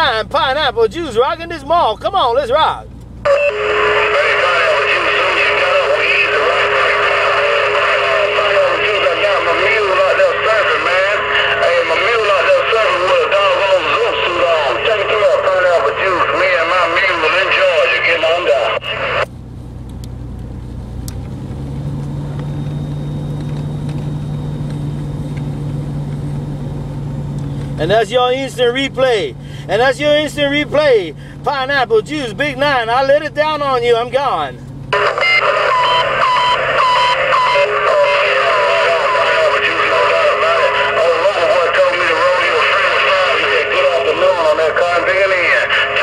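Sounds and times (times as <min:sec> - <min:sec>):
warbling radio voice transmission: 0:00.0 - 0:19.2, 0:27.8 - 0:46.0
steady low hum: 0:00.0 - 0:46.0.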